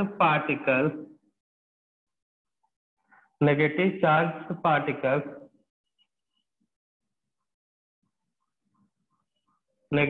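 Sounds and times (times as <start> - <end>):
man speaking: 0.0 - 1.0.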